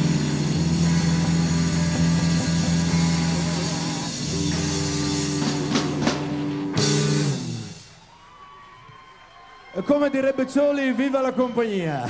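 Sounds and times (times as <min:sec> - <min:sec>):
rock band droning chord: 0:00.0 - 0:07.9
drumming: 0:00.0 - 0:08.3.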